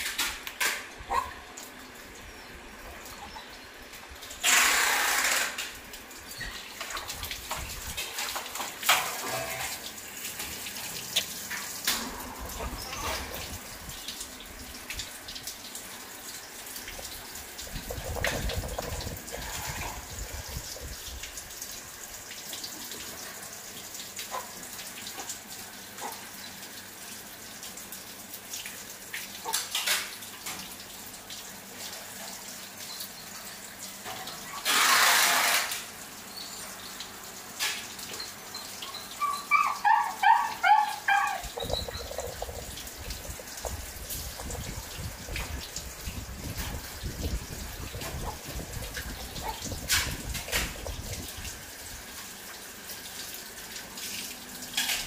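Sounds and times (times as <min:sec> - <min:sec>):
water running: 0:00.0 - 0:55.0
monkey squeaking: 0:38.9 - 0:42.6.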